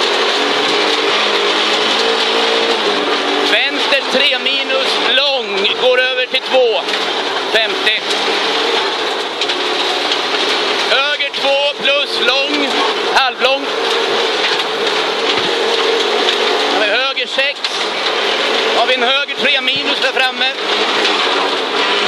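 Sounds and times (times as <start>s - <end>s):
rally car engine under load: 0.0s - 22.0s
tyre and road noise: 0.0s - 22.0s
person's voice: 3.5s - 6.9s, 7.5s - 8.1s, 10.9s - 13.7s, 16.7s - 17.8s, 18.8s - 20.6s.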